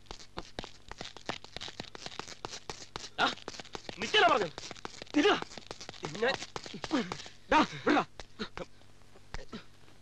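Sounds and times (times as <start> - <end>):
footsteps on paved road: 0.4 - 7.3.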